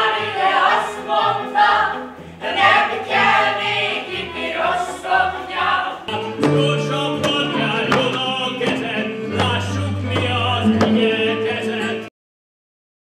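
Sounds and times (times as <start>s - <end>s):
violins: 0.0s - 12.1s
voices singing together: 0.0s - 12.1s.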